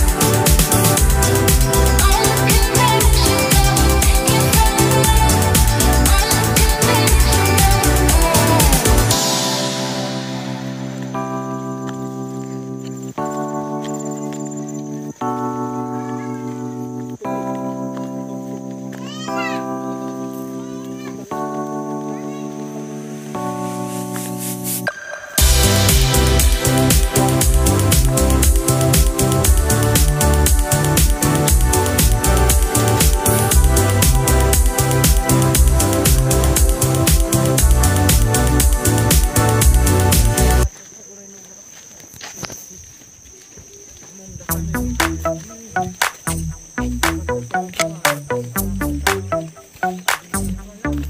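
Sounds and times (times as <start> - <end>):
organ-like keyboard chords: 0.0 - 40.7, 44.3 - 51.0
high-pitched insect drone: 0.0 - 51.0
footsteps on concrete: 10.6 - 26.1, 40.7 - 51.0
faint voices: 14.5 - 23.6, 40.6 - 51.0.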